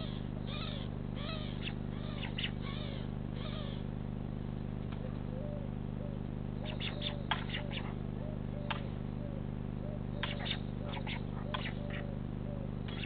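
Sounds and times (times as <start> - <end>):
small birds chirping: 0.0 - 3.9, 4.9 - 13.0
steady electrical hum: 0.0 - 13.0.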